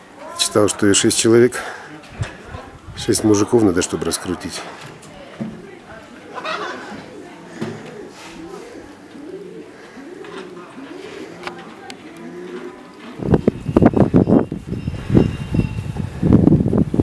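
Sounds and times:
pigeons cooing: 0:01.6 - 0:15.2.

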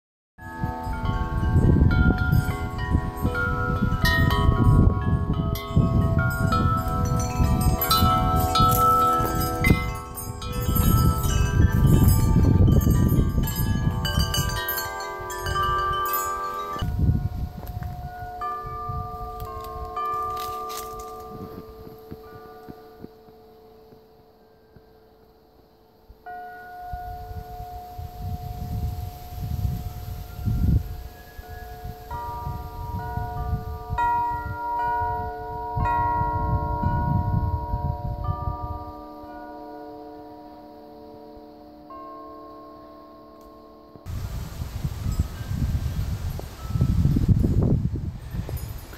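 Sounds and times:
wind buffeting microphone: 0:00.4 - 0:23.4, 0:26.8 - 0:39.4, 0:44.0 - 0:48.9
metal wind chimes ringing: 0:00.4 - 0:48.9.

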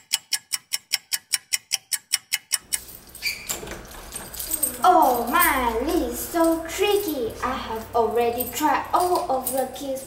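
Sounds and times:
rapid clock ticking: 0:00.0 - 0:02.8.

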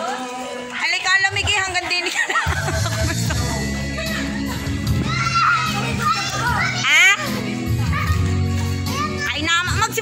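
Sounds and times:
background music: 0:00.0 - 0:10.0
children shouting and playing: 0:02.7 - 0:10.0.

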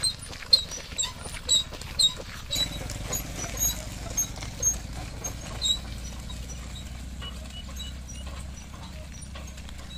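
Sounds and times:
hooves clopping on pavement: 0:00.0 - 0:09.9.

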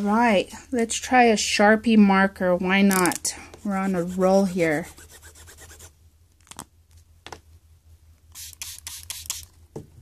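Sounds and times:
marker rubbing strokes: 0:03.6 - 0:06.0, 0:08.3 - 0:09.5
marker scribbling: 0:03.6 - 0:06.0, 0:08.3 - 0:09.5.

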